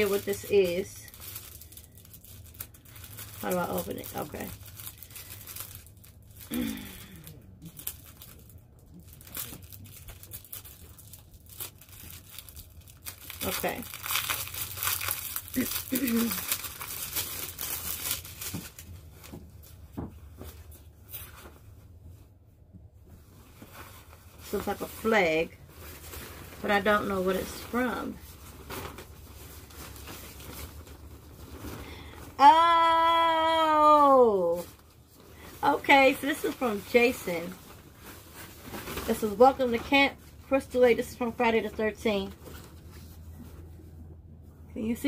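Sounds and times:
plastic bag crinkling: 0:00.0 - 0:19.9, 0:23.5 - 0:43.6.

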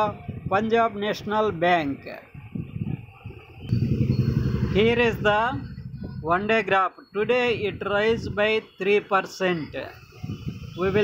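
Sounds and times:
vehicle engine rumble: 0:01.5 - 0:06.7
man's voice: 0:04.6 - 0:10.0.

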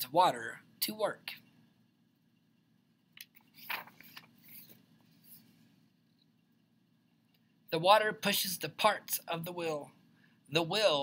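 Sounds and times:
paper page rustling: 0:03.4 - 0:05.5.

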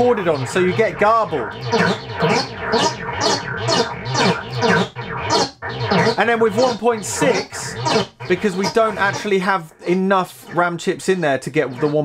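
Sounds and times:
synthesizer notes echoing: 0:00.0 - 0:10.8.

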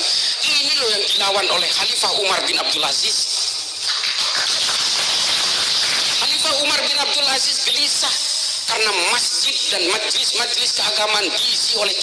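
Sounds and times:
high recording hiss: 0:00.0 - 0:12.0.

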